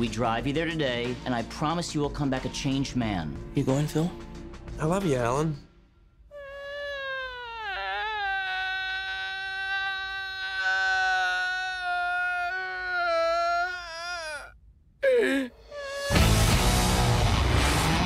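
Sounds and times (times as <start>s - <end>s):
man whimpering: 6.3s - 16.3s
man wailing: 6.3s - 16.4s.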